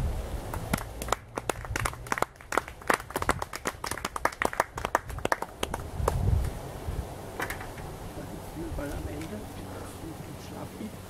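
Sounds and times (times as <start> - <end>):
audience applauding: 0.5 - 6.2.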